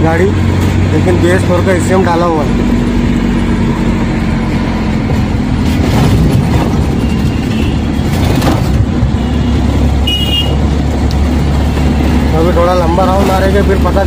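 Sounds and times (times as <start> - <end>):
diesel engine running: 0.0 - 14.0
road noise: 0.0 - 14.0.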